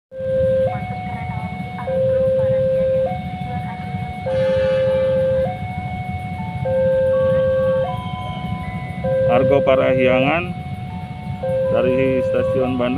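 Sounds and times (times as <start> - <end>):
level crossing alarm two-tone signal: 0.1 - 12.9
steady low rumble: 0.2 - 12.9.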